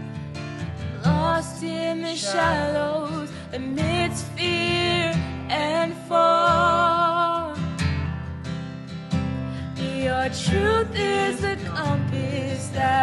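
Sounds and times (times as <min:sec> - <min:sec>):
acoustic guitar strumming: 0:00.0 - 0:13.0
person singing: 0:01.0 - 0:07.6, 0:09.8 - 0:13.0.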